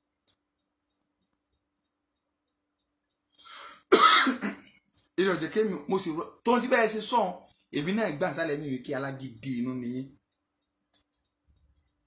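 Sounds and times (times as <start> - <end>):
breathy sound: 3.3 - 3.9
man coughing: 3.9 - 4.7.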